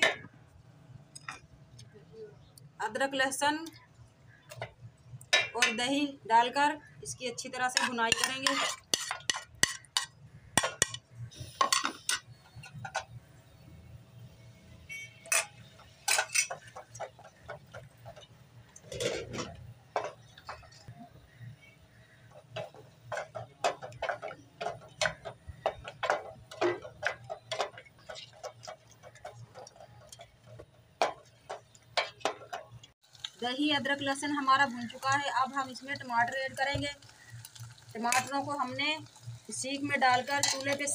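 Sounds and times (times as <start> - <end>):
wooden spoon scraping metal pot: 7.4 - 13.1, 22.0 - 32.7.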